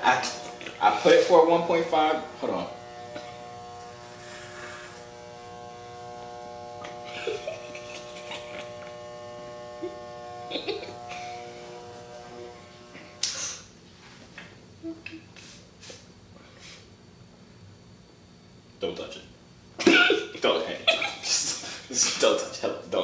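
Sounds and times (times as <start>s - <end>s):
electric hair clippers buzzing: 0.0s - 13.7s, 19.8s - 21.4s.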